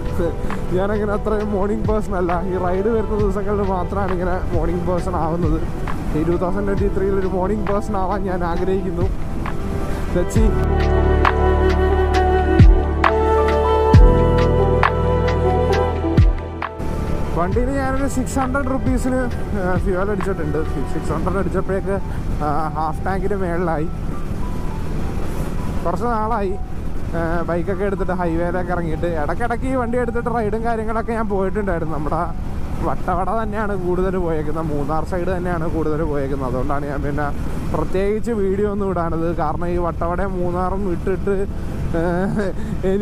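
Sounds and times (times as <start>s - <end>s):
man talking: 0.0s - 9.2s, 10.1s - 10.7s, 17.3s - 24.0s, 25.8s - 43.0s
motorcycle engine rumble: 0.0s - 43.0s.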